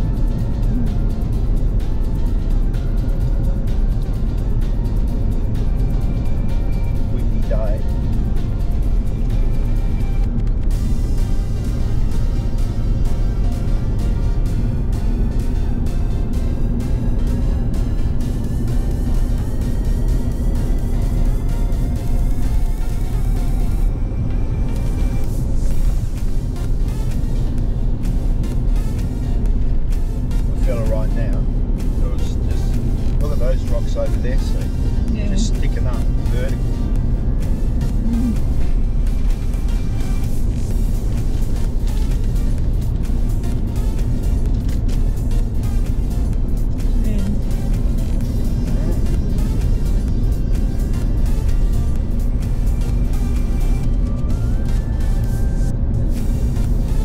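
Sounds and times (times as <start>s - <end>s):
music playing: 0.0s - 57.0s
vehicle engine and tyre noise: 0.0s - 57.0s.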